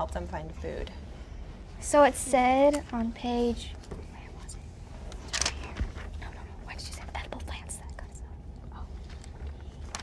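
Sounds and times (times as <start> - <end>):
soft whispering: 4.0 - 9.3
book pages turning: 9.0 - 10.0.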